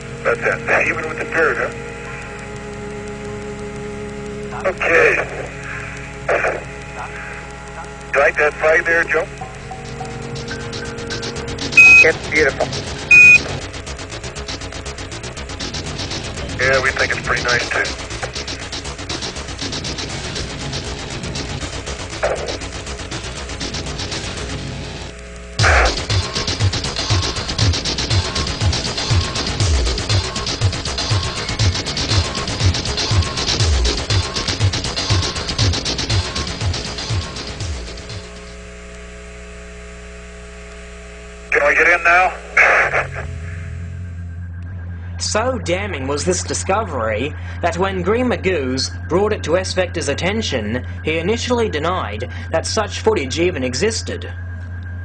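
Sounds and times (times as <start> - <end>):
radio hum and hiss: 0.0 - 55.0
steady tones: 0.0 - 55.0
short high beep: 11.7 - 12.2, 13.1 - 13.4.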